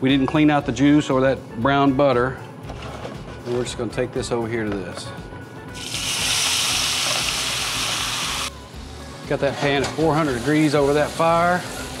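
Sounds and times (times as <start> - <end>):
food sizzling in a skillet: 5.8 - 8.5.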